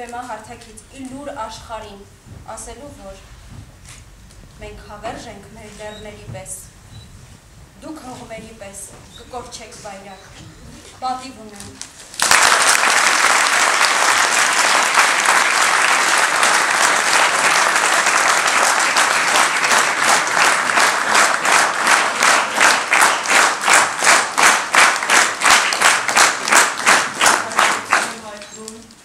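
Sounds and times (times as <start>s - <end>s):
audience applauding: 12.1s - 28.5s.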